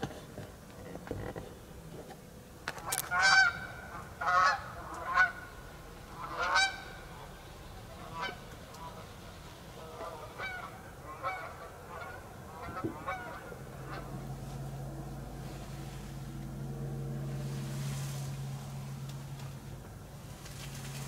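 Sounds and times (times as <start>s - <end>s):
geese honking: 2.7s - 14.9s.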